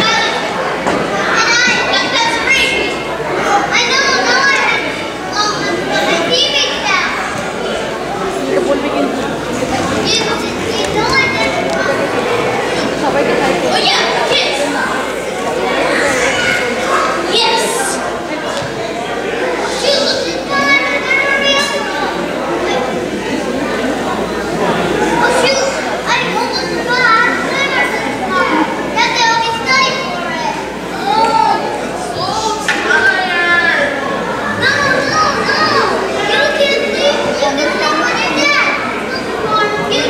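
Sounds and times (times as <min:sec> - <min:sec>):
children speaking and calling: 0:00.0 - 0:40.0.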